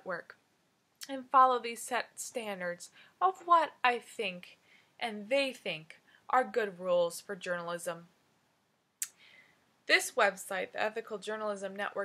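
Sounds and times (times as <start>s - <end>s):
woman's voice: 0.0s - 0.4s, 1.0s - 8.2s, 9.9s - 12.0s
faint breath in: 4.6s - 5.0s, 9.2s - 9.7s.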